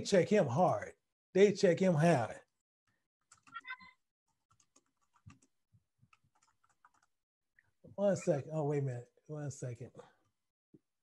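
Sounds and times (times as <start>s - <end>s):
typing on computer keyboard: 3.2s - 7.2s.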